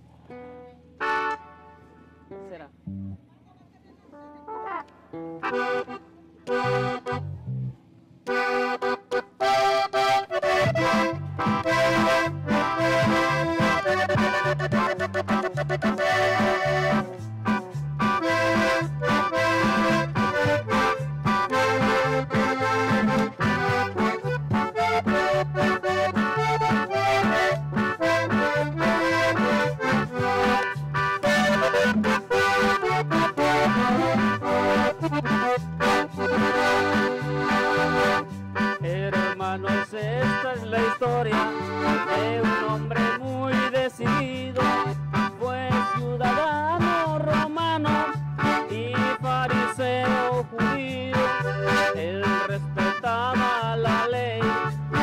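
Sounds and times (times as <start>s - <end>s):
band playing with steady beat: 0.0s - 2.6s, 4.3s - 55.0s
accordion: 0.0s - 2.7s, 3.5s - 55.0s.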